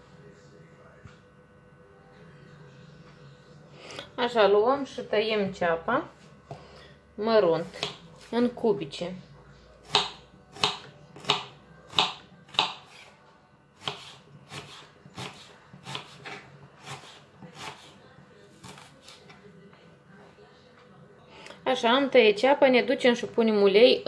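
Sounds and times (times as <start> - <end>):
knife chopping on wooden board: 7.7 - 8.3, 9.8 - 13.1, 13.8 - 18.0, 18.6 - 19.3.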